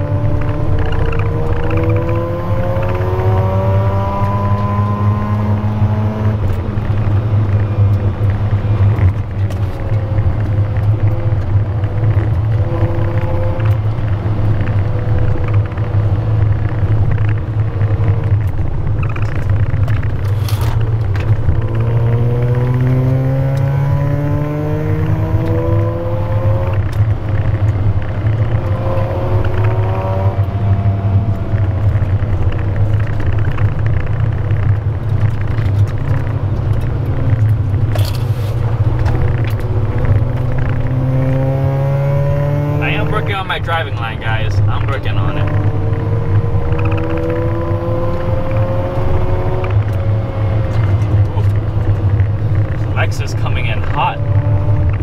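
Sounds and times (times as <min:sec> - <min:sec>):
rotary car engine revving: 0:00.0 - 0:55.0.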